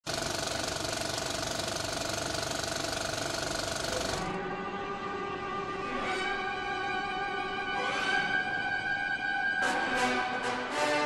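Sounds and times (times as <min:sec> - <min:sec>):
helicopter rotor chopping: 0:00.1 - 0:04.4
string music with long notes: 0:04.2 - 0:11.0.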